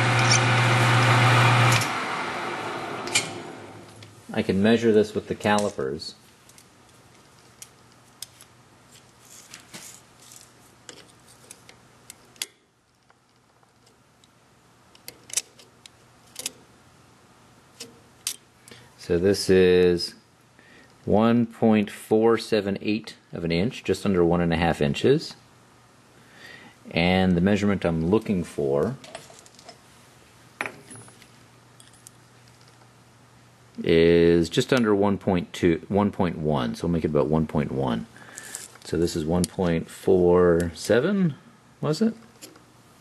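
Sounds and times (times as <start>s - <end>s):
faint steady hum: 0.0s - 43.0s.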